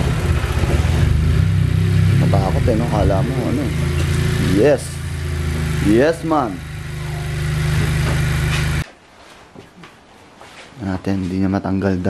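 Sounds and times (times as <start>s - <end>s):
car engine idling: 0.0s - 8.8s.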